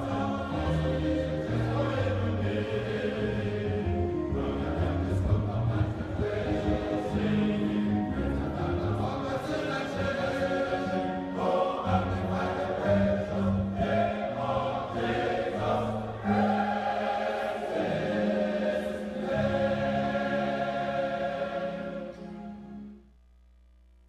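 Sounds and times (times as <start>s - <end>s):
choir singing: 0.0s - 22.9s.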